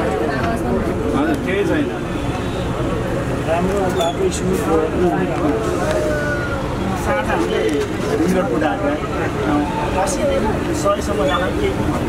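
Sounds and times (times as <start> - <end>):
low rumble of bus ride: 0.0 - 12.0
voices talking: 0.0 - 12.0.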